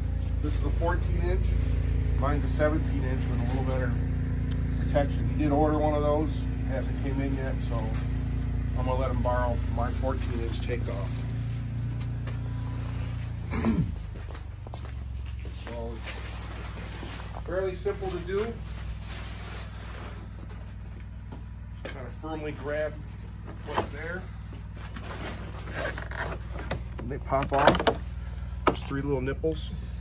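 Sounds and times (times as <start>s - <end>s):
low mechanical hum: 0.0s - 30.0s
person coughing: 13.4s - 14.0s
plastic scraping and creaking: 24.9s - 28.1s.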